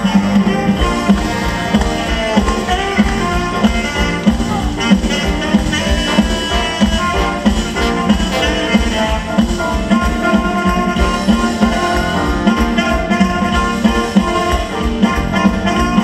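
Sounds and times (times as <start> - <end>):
live band playing: 0.0 - 16.0
saxophone: 0.0 - 16.0
steady drum beat: 0.0 - 16.0.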